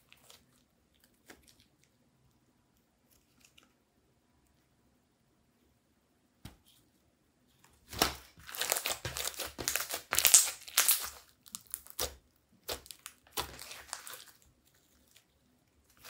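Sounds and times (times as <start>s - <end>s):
slime squished crackling and popping: 7.9s - 14.5s.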